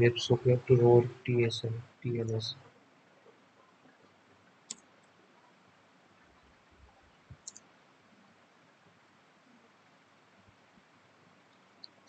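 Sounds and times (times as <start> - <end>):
keyboard keystroke clicks: 7.4 - 7.7.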